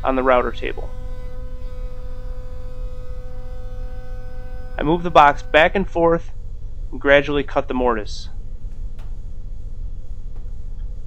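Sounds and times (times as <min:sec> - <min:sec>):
router running: 0:00.0 - 0:06.1.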